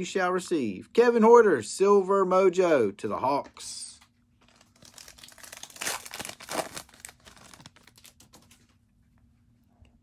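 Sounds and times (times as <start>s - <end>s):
foil wrapper crinkling and tearing: 4.4s - 8.7s.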